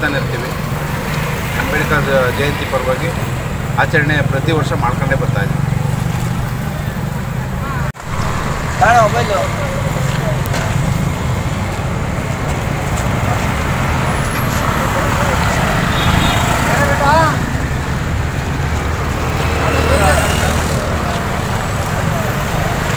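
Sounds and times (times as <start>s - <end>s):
people's voices: 0.0s - 22.9s
road traffic rumble: 0.0s - 22.9s.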